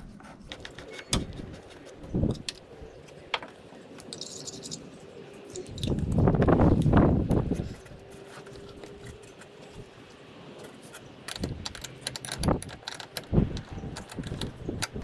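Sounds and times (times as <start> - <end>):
rustling handling noise: 0.0 - 14.3.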